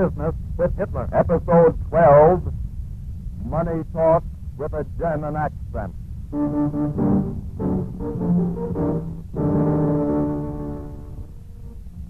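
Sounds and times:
brass-led orchestral music: 6.4 - 11.8.

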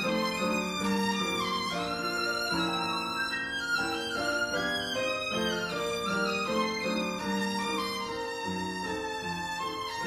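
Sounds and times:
solo violin slow melody: 0.0 - 10.0.

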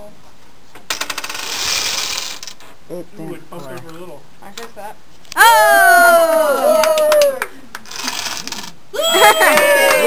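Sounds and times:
dominoes toppling: 0.9 - 2.6, 7.8 - 8.8.

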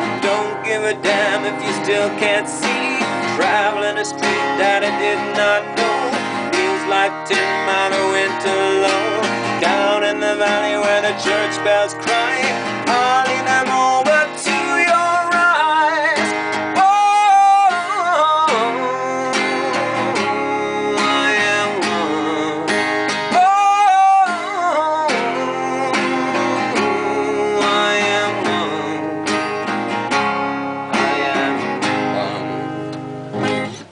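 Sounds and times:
man singing: 0.0 - 29.8, 30.8 - 33.9
strummed acoustic guitar: 0.0 - 33.9.

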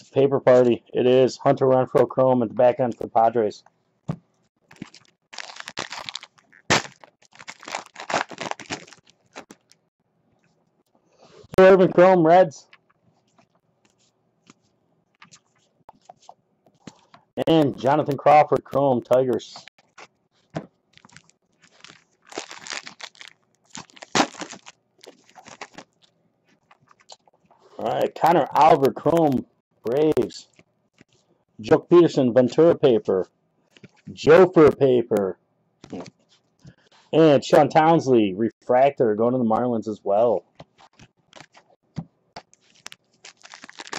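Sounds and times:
foil pack crinkling: 4.7 - 9.8, 20.9 - 26.9, 40.8 - 41.8, 42.4 - 43.9
sharp crack: 6.7 - 8.9, 24.0 - 24.6
cards being handled: 40.6 - 43.9.

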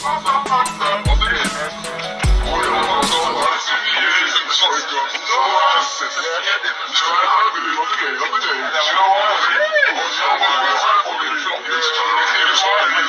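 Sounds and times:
party music playing: 0.0 - 3.5
people singing: 0.0 - 13.0
people talking: 0.0 - 13.0.

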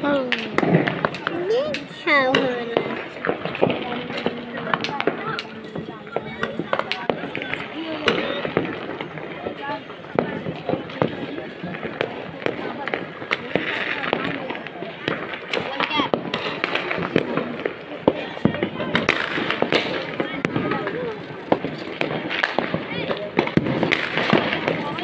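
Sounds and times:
indistinct voices: 0.0 - 16.2
firecrackers cracking: 0.0 - 25.0.

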